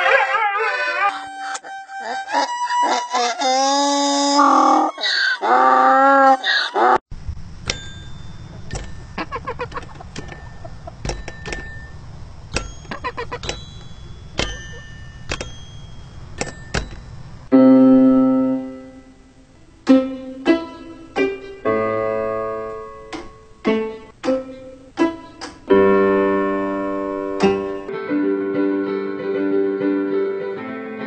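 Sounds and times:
dog howling: 0.0s - 1.4s, 3.8s - 7.0s
donkey braying: 0.0s - 7.0s, 12.9s - 13.5s.

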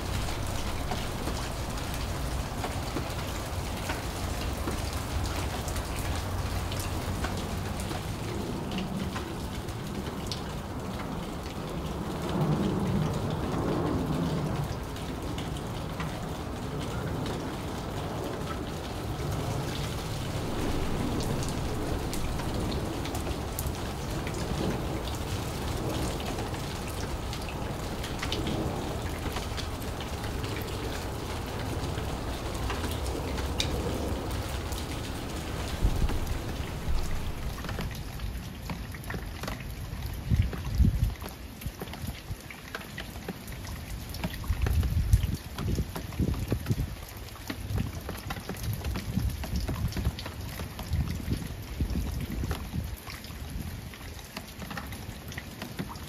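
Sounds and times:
steady rain falling: 0.0s - 56.0s
low rumbling bursts: 19.2s - 38.0s.

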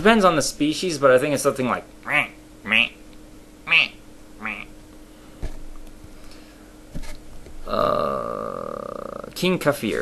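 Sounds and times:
man imitating penguin squawks: 2.1s - 3.0s, 3.7s - 4.7s.

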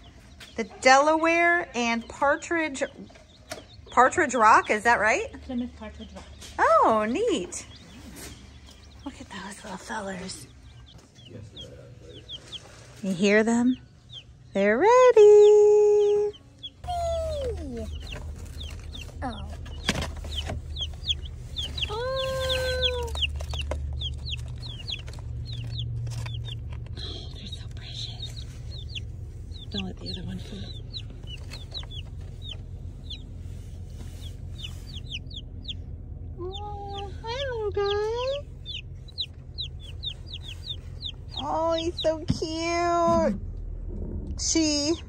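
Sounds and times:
chicks peeping: 0.0s - 43.2s
low steady hum: 0.0s - 45.0s.

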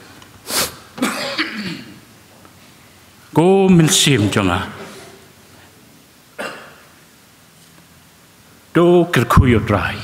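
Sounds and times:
man clearing his throat: 1.0s - 2.0s, 6.4s - 6.9s.

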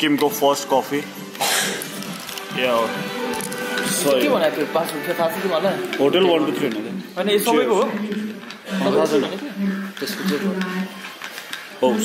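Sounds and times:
man's voice: 0.0s - 1.2s, 2.4s - 8.0s
people talking: 3.9s - 11.1s, 11.8s - 12.0s.

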